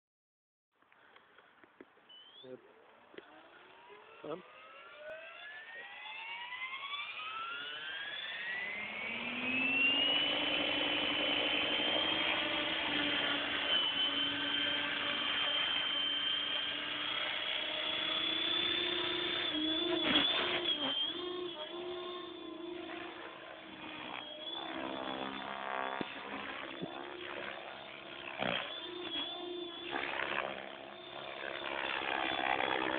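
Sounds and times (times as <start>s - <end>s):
rc helicopter motor whine: 2.1s - 32.9s
rotor blades droning: 2.8s - 32.9s.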